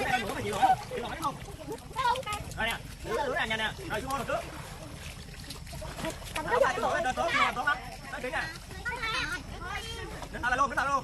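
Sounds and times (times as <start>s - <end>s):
children calling out and chattering: 0.0s - 3.5s, 4.6s - 10.4s.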